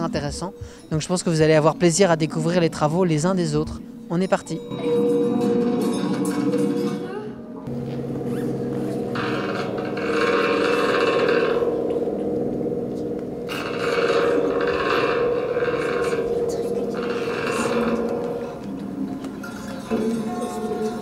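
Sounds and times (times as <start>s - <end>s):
droning metallic tones: 0.0s - 21.0s.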